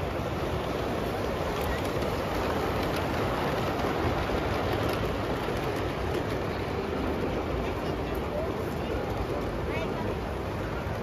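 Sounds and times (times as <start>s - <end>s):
model trains rolling on track: 0.0s - 11.0s.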